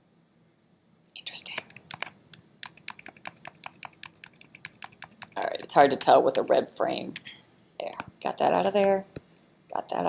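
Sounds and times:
computer keyboard key clicks: 0:01.5 - 0:06.5.

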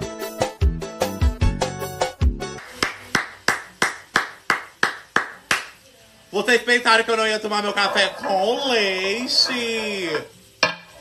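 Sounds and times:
person clapping hands: 0:02.6 - 0:05.8.

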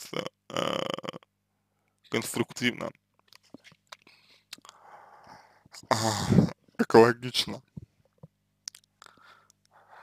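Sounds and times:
man speaking: 0:02.1 - 0:03.0, 0:05.8 - 0:07.7
man's mouth clicks: 0:03.2 - 0:04.8, 0:08.6 - 0:09.8
breathy intake of breath: 0:04.2 - 0:06.5, 0:09.1 - 0:10.0.

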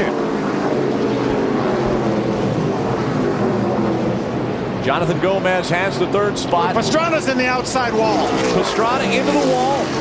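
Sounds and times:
racing car engines droning: 0:00.0 - 0:10.0.

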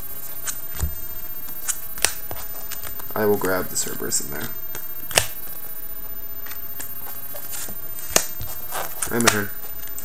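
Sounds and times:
cards rustling on playmat: 0:06.4 - 0:10.0.

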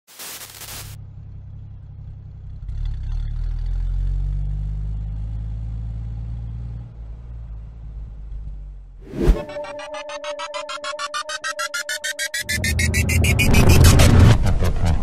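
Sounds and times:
jeep engine rumbling: 0:01.0 - 0:09.0.

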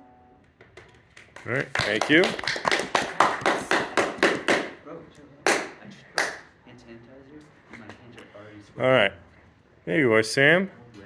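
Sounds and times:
small group applauding: 0:00.7 - 0:04.8, 0:05.4 - 0:06.5.

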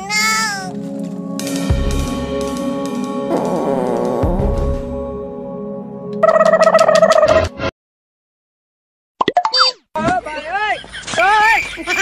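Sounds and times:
background music with held notes: 0:00.0 - 0:07.7.

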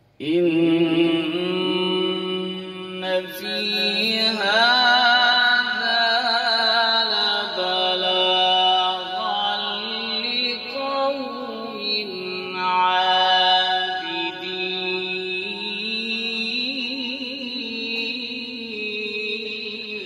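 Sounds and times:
man chanting a recitation: 0:00.2 - 0:20.0.

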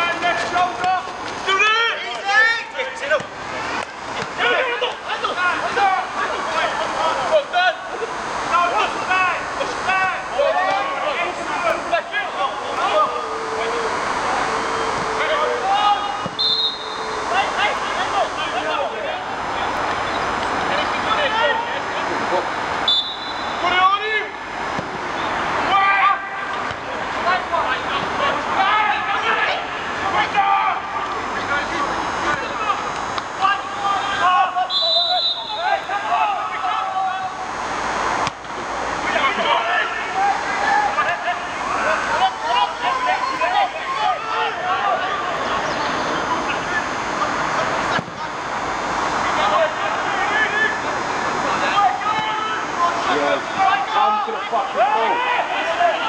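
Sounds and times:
players shouting: 0:00.0 - 0:56.0
high steady whistle: 0:13.1 - 0:17.6, 0:22.8 - 0:23.7, 0:34.6 - 0:35.9
referee's whistle blast: 0:16.2 - 0:17.2, 0:22.8 - 0:23.6, 0:34.6 - 0:35.9.

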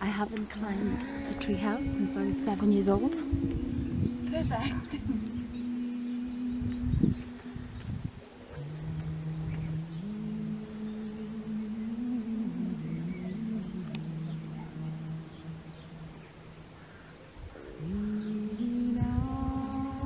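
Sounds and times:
slow meditative tune: 0:00.0 - 0:20.0
faint bird chirps: 0:01.7 - 0:18.9.

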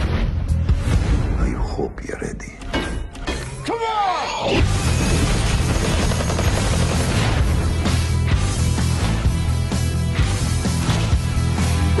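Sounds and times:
automatic gunfire: 0:05.0 - 0:07.5.

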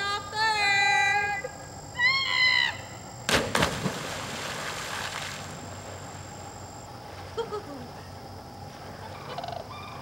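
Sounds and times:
bodies splashing into water: 0:03.3 - 0:06.4.

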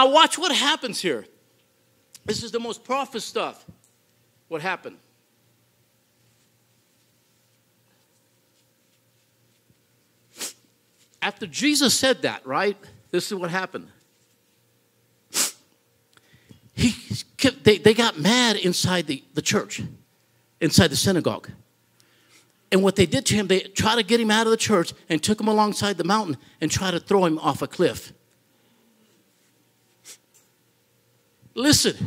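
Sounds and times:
man speaking: 0:02.2 - 0:03.7, 0:04.5 - 0:05.0, 0:11.2 - 0:14.0, 0:16.8 - 0:20.0, 0:22.7 - 0:28.2, 0:31.5 - 0:32.0
brief breath: 0:16.2 - 0:16.7.

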